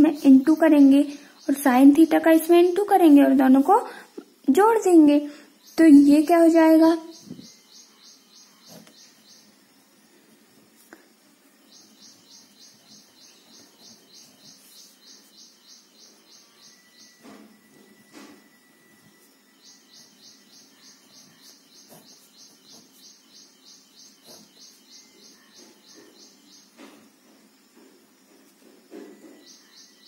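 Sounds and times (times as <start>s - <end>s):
animal chirping in rapid pulses: 7.1s - 9.5s, 20.0s - 26.4s.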